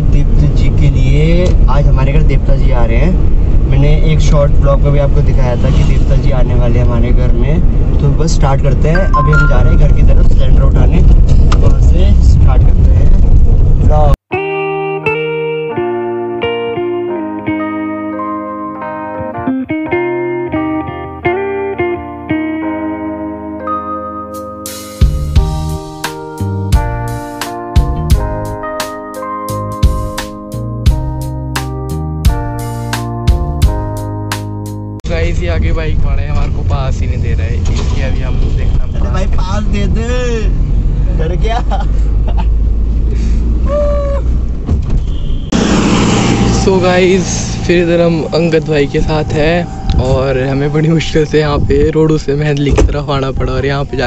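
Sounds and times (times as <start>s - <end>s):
engine and road rumble: 0.0s - 14.3s, 29.6s - 54.0s
person speaking: 9.0s - 10.8s
car rumble inside cabin: 35.1s - 53.0s.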